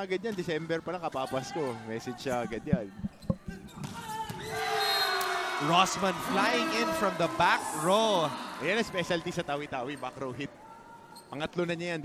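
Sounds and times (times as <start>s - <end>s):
crowd noise in a gym: 0.0s - 12.0s.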